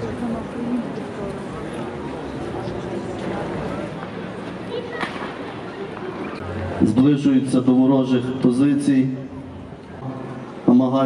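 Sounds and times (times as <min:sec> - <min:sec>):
sharp crack: 0:05.0 - 0:05.4.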